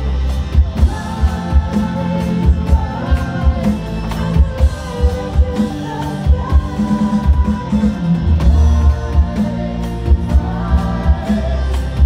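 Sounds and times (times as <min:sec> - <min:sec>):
rock band playing: 0:00.0 - 0:12.0
person singing: 0:00.7 - 0:12.0.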